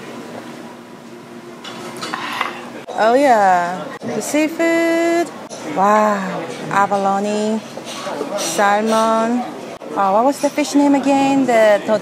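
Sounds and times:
restaurant room noise: 0.0 - 12.0
tableware clinking: 1.6 - 3.0, 6.4 - 9.4.

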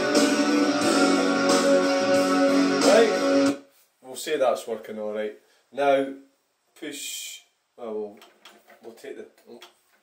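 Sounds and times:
rock song with singing: 0.0 - 3.6.

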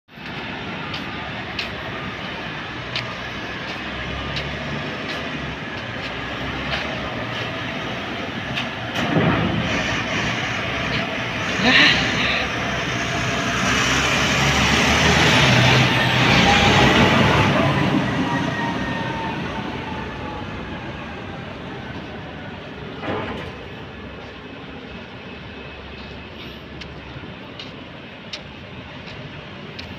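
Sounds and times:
dump truck diesel engine: 0.1 - 29.9.

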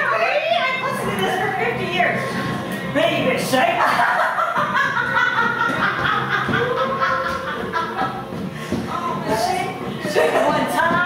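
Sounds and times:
person laughing: 3.8 - 8.3.

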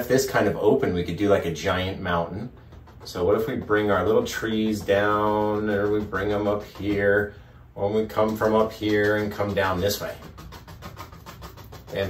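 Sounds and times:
paintbrush tapping on canvas: 1.3 - 12.0.

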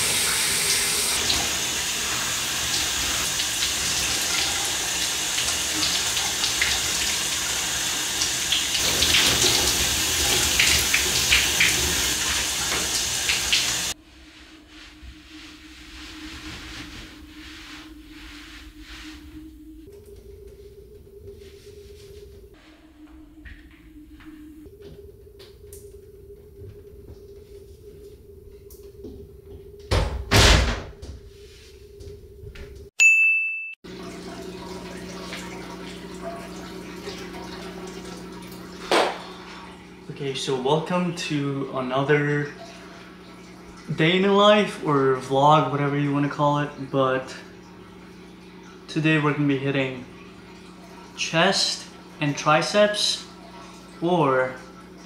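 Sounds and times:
shower spray hissing: 0.0 - 19.9
low steady hum: 13.9 - 32.9.

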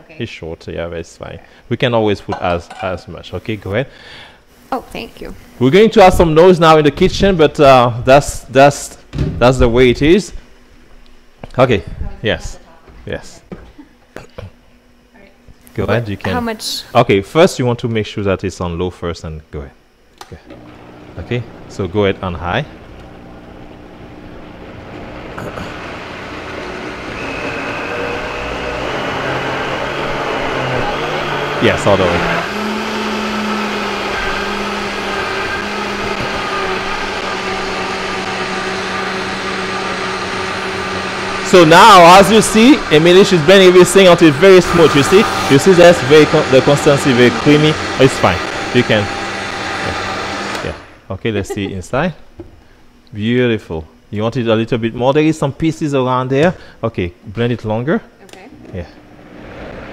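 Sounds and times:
blender running: 20.4 - 51.6, 58.3 - 59.9
high whine: 26.8 - 33.2, 33.8 - 52.2.

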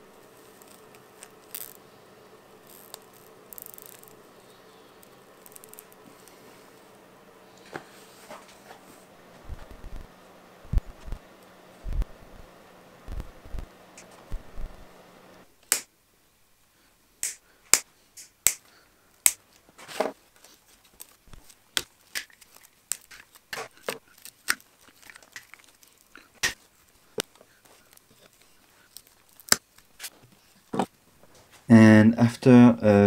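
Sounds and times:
faint steady hum: 0.0 - 33.0
side cutters snipping twigs: 21.0 - 26.6.

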